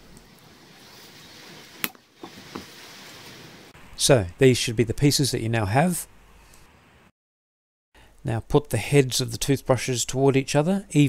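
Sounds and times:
faint steady hiss: 0.0 - 7.1, 8.0 - 11.0.

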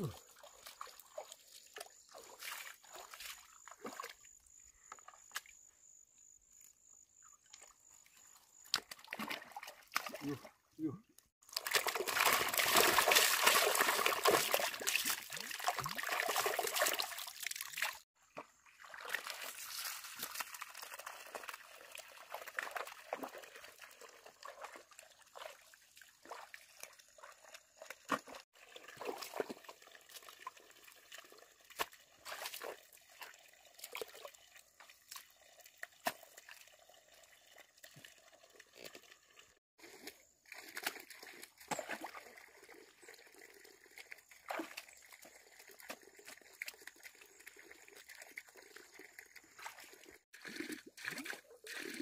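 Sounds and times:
bare feet wading in mud: 0.0 - 4.3, 11.4 - 36.8, 43.9 - 52.0
water splashing in mud: 0.0 - 4.4, 7.5 - 52.0
faint water trickle: 0.0 - 5.2, 18.6 - 28.0, 28.6 - 52.0.

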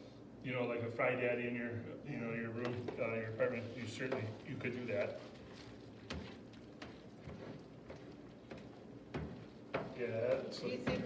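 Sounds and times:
utensil knocking against bowl: 2.6 - 11.0.

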